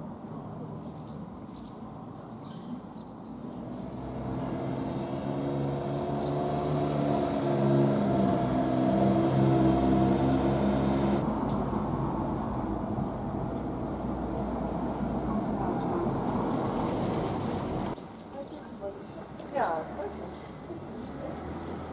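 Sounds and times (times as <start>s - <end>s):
noisy street ambience: 0.0s - 21.9s
vehicle engine running: 3.6s - 11.2s.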